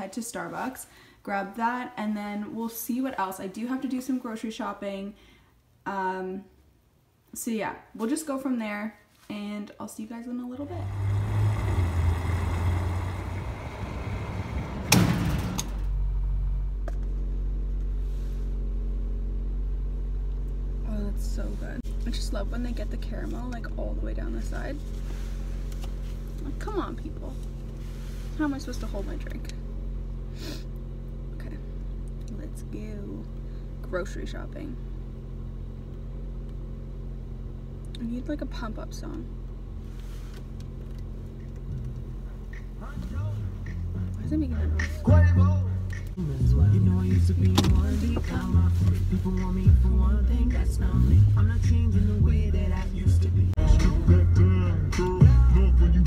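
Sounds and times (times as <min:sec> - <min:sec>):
low hum: 0:10.5 - 0:56.0
car engine idling: 0:10.6 - 0:56.0
fuel pumping rushing noise: 0:10.8 - 0:15.8
sharp thump: 0:14.8 - 0:15.9.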